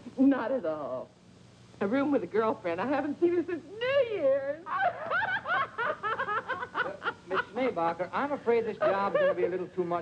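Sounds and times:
woman laughing: 4.7 - 7.8, 8.8 - 9.7.

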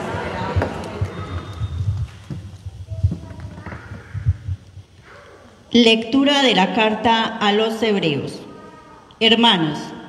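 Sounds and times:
faint voices: 0.0 - 5.7.

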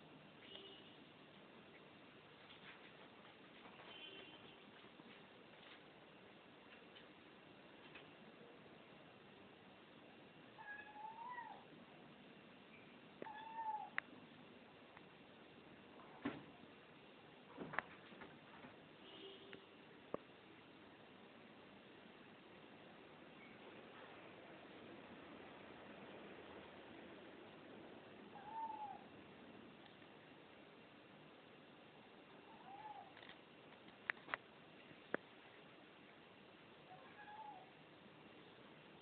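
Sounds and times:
cat meowing: 10.6 - 11.7, 13.2 - 14.0, 28.3 - 29.1, 32.5 - 33.2, 36.9 - 37.7.

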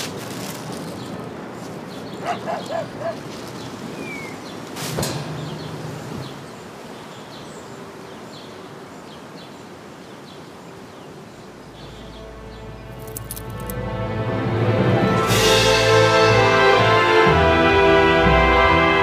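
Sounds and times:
bird chirps: 1.9 - 13.2
music: 11.9 - 19.0.

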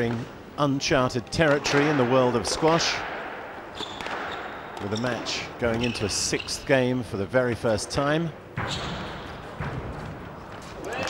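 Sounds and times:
squash ball hits: 2.9 - 4.9.

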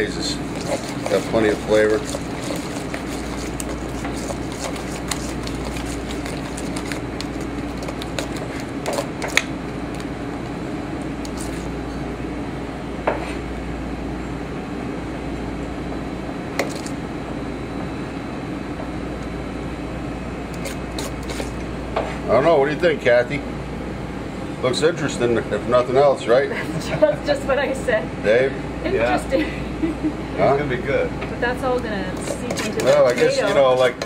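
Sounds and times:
kitchen ventilation hum: 0.0 - 34.0.

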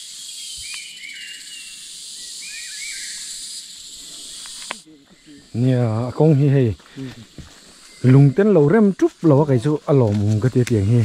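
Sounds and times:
steady high hiss: 0.0 - 11.0.

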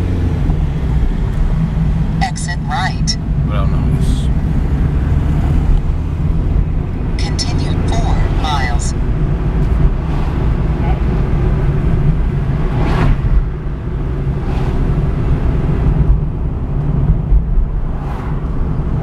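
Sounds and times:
engine and road rumble in car: 0.0 - 19.0
whooshing swish: 12.7 - 13.4, 14.4 - 14.9, 17.8 - 18.6.

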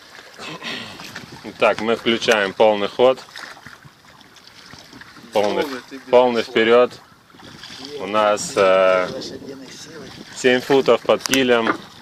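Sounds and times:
water washing around rowboat: 0.0 - 12.0
oars knocking: 0.4 - 12.0.

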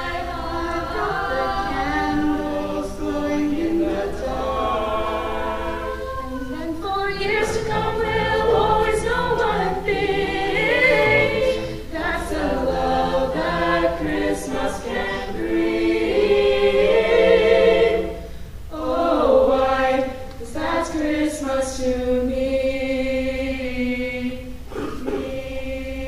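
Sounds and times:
a cappella group singing: 0.0 - 26.0.

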